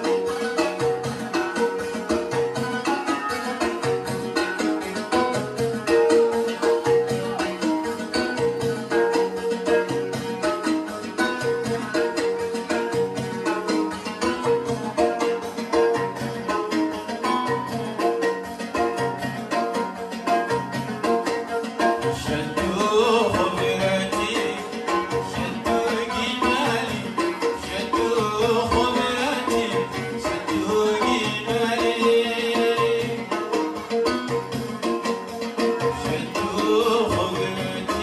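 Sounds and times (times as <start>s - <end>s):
rhythmic drum beat: 0.0s - 38.0s
man singing: 22.0s - 33.9s, 35.8s - 38.0s.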